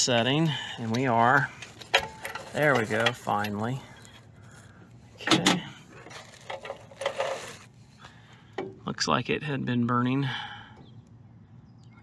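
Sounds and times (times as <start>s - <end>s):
hand and sleeve rustling scrape: 6.0s - 7.9s.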